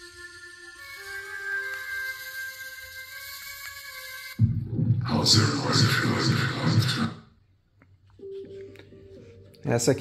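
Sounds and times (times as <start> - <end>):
music from speaker: 0.0 - 7.3, 8.1 - 10.0.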